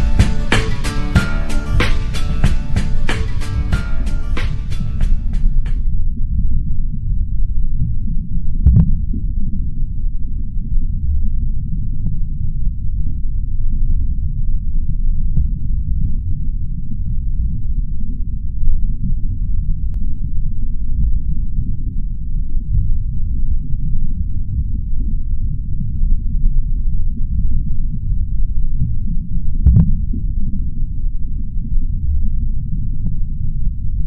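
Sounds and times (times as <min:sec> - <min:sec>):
sharp knock: 0:00.0 - 0:05.8
loud muffled low rumble: 0:00.0 - 0:34.0
muffled low throbbing: 0:00.0 - 0:34.0.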